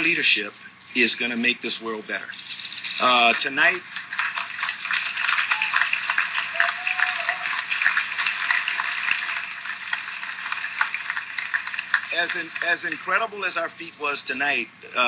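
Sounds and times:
audience applauding: 2.9 - 13.4.

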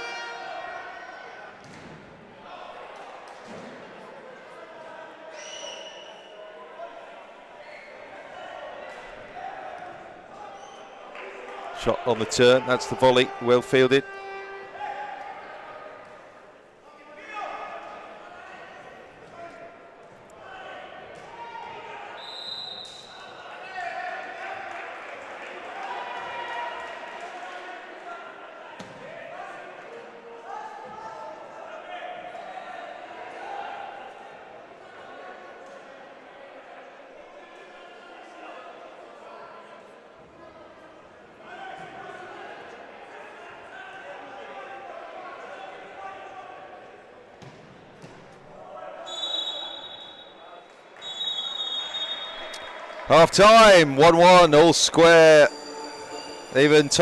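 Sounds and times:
voices echoing in hall: 0.0 - 57.0
referee whistle: 5.3 - 6.4, 22.1 - 23.4, 49.0 - 57.0.

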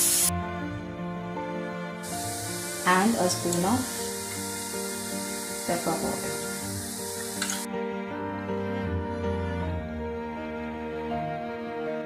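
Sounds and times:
onions sizzling in oil: 0.0 - 0.3, 2.0 - 7.7
background music: 0.0 - 12.0.

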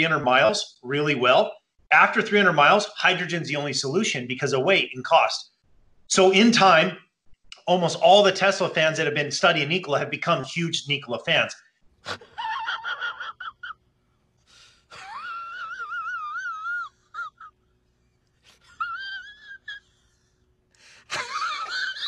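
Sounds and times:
man wheezing laugh: 12.0 - 13.8, 14.9 - 17.6, 18.4 - 20.3, 21.0 - 22.0.

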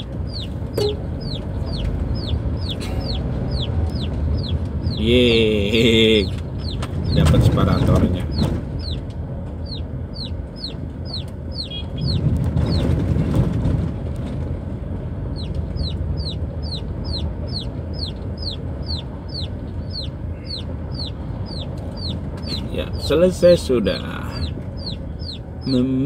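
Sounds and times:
chicks peeping: 0.0 - 13.0, 15.3 - 26.0
car rumbling on rough road: 0.0 - 26.0.

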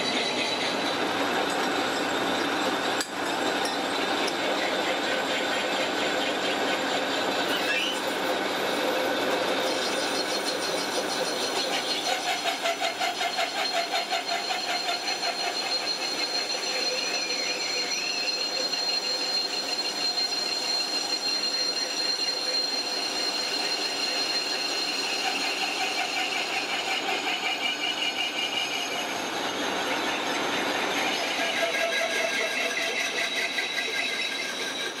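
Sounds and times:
cutting tool squealing: 0.0 - 35.0
metal lathe running: 0.0 - 35.0.

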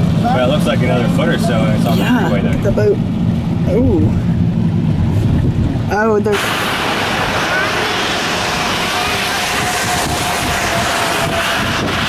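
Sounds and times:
wind buffeting microphone: 2.6 - 12.0.

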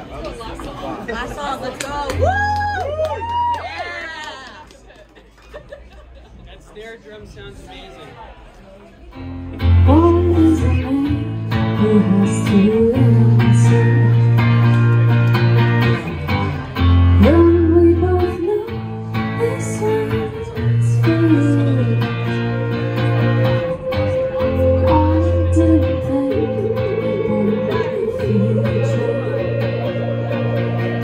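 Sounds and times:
electric guitar: 9.2 - 31.0
electric bass notes: 9.3 - 31.0
woman singing: 9.7 - 14.6, 17.2 - 31.0.

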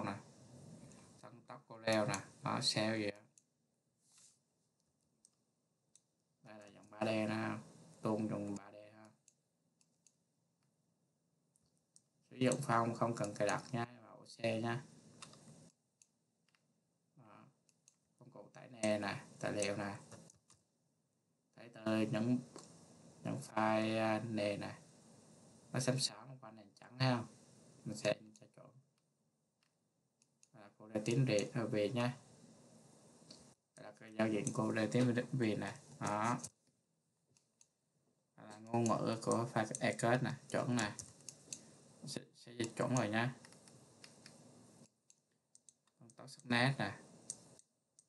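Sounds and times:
person speaking: 0.0 - 3.4, 6.4 - 9.2, 12.3 - 15.5, 18.2 - 20.3, 21.6 - 24.9, 25.7 - 28.7, 30.5 - 32.3, 33.4 - 36.6, 38.4 - 44.4, 45.7 - 47.6
faint mouse clicks: 11.6 - 13.9, 15.2 - 16.6, 18.8 - 20.6, 33.2 - 36.6, 38.5 - 48.0.

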